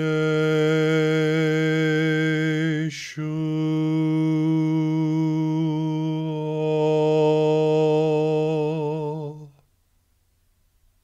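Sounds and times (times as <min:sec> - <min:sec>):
man chanting on one pitch: 0:00.0 - 0:09.6.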